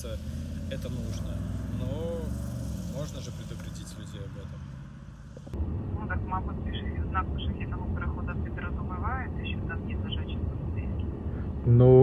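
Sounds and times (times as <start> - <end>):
steady low rumble: 5.2 - 12.0.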